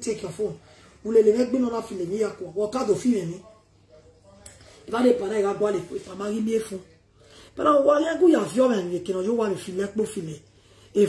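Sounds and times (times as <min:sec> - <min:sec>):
woman speaking: 0:00.0 - 0:03.6, 0:04.2 - 0:10.4.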